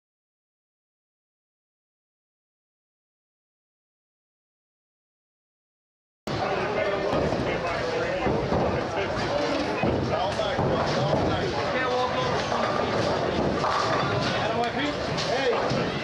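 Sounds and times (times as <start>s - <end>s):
crowd talking: 6.3s - 16.0s
bowling balls and pins clattering: 6.4s - 16.0s.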